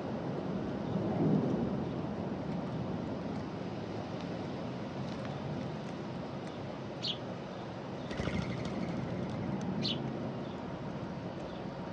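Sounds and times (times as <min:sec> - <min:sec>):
sparrow chirp falling in pitch: 0:08.1 - 0:10.0.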